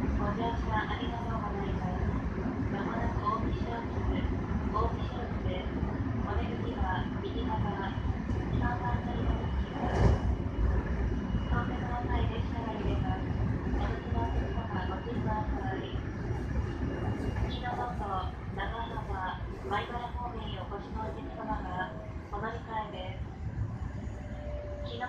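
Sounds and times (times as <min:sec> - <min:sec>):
train wheels rumbling on rails: 0:00.0 - 0:22.6
voices: 0:00.1 - 0:10.2, 0:11.4 - 0:16.1, 0:17.3 - 0:25.0.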